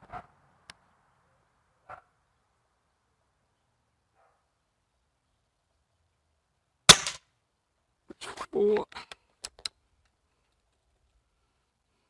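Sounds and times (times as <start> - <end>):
air rifle shot: 6.9 - 7.2.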